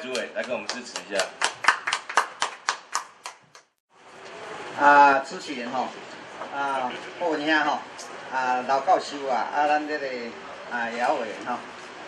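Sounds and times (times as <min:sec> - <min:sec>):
audience applauding: 0:00.0 - 0:03.7.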